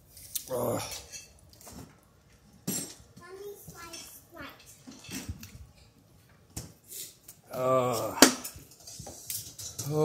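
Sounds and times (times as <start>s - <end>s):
child's voice: 3.2s - 4.7s.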